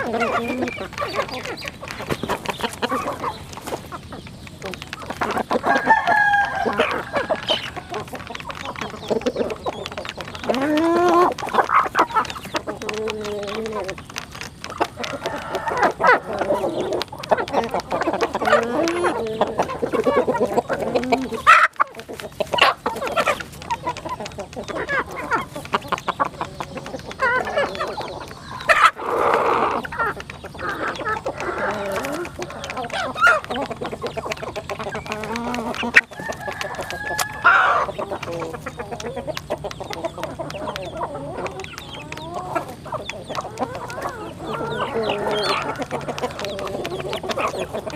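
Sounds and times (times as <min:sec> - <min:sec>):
beaks pecking plastic trough: 0:00.0 - 0:47.9
chickens clucking: 0:00.0 - 0:47.9
rooster crowing: 0:05.6 - 0:08.0, 0:15.1 - 0:16.5, 0:36.2 - 0:37.9.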